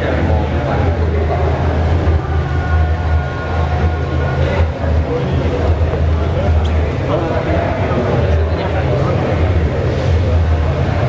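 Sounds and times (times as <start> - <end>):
indistinct voices: 0.0 - 11.0
steady low hum: 0.0 - 11.0.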